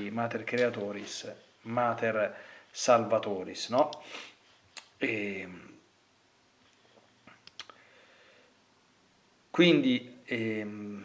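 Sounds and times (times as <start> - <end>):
person breathing: 2.3 - 2.8, 4.0 - 4.6, 7.7 - 8.6
faint mouth clicks: 7.3 - 7.8.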